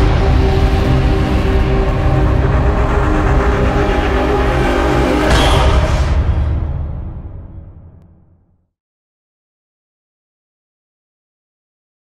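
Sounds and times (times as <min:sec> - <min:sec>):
low rumbling drone: 0:00.0 - 0:08.5.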